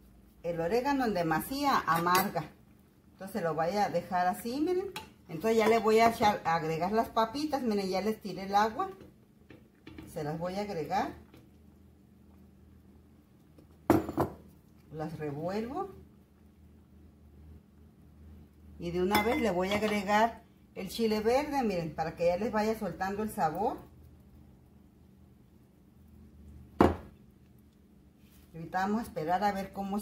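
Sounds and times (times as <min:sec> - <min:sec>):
bowl clinking against metal pan: 0:19.1 - 0:19.6.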